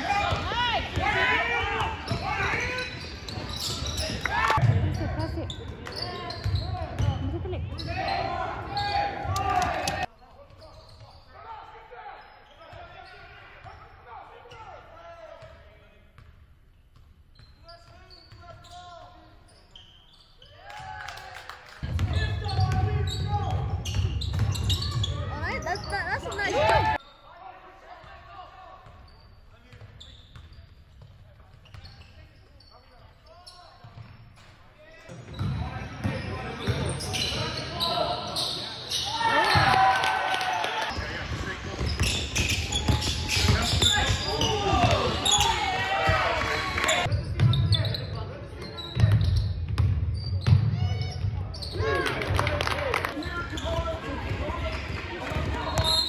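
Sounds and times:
ball bouncing on wooden court: 0:21.8 - 0:25.2, 0:49.0 - 0:50.8.

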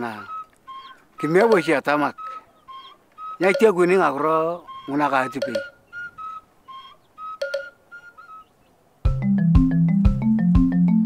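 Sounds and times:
bird chirping: 0:00.0 - 0:09.1.

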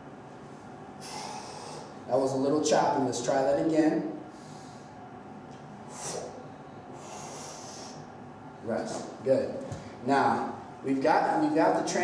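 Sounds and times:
man exhaling hard: 0:01.0 - 0:02.0, 0:05.9 - 0:06.4.

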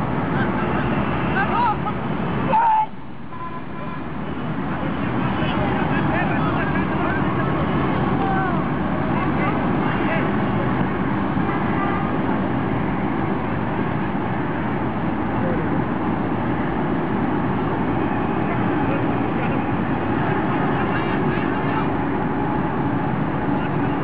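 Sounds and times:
steady background rumble: 0:00.0 - 0:24.0
distant shouts from players: 0:01.0 - 0:04.2, 0:05.4 - 0:10.4.

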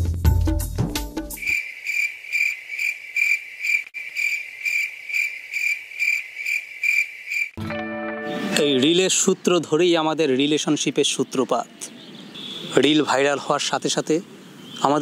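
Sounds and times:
music: 0:00.0 - 0:01.4, 0:07.6 - 0:09.0
cricket chirping: 0:01.4 - 0:07.6.

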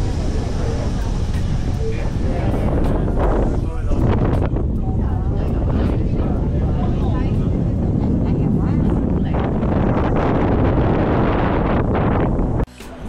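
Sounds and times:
cable car rumbling: 0:00.0 - 0:13.0
passengers talking: 0:00.0 - 0:13.0
wind rushing: 0:00.0 - 0:13.0.

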